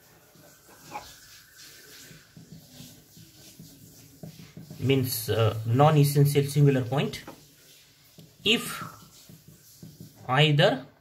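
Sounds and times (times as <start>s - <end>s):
ballpoint pen writing on paper: 2.2s - 4.8s.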